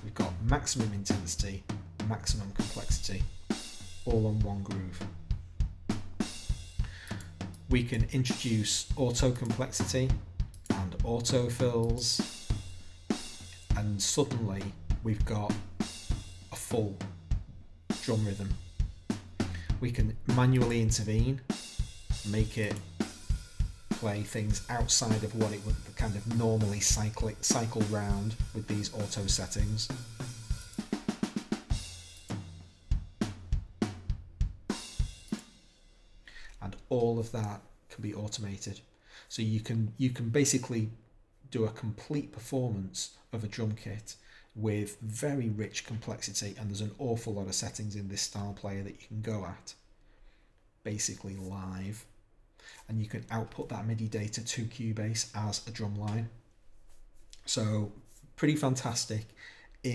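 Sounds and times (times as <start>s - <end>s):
rock drum kit groove: 0.0s - 36.6s.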